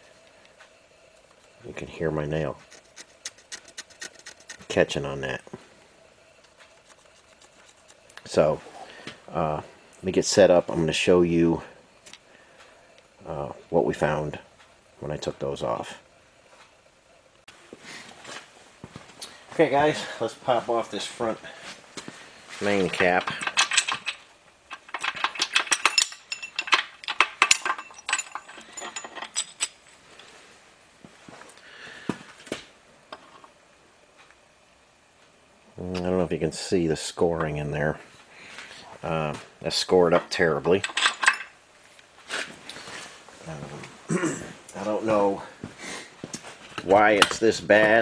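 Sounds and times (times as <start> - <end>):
man speaking: 1.6 - 2.6, 4.7 - 5.5, 8.2 - 8.6, 9.3 - 11.7, 13.2 - 14.4, 19.6 - 21.6, 22.6 - 23.4, 35.8 - 38.0, 39.0 - 40.8, 43.4 - 44.0, 44.8 - 45.6, 46.8 - 48.0.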